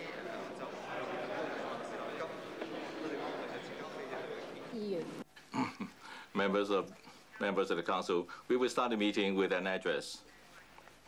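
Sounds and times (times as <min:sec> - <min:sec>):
background murmur: 0:00.0 - 0:09.2.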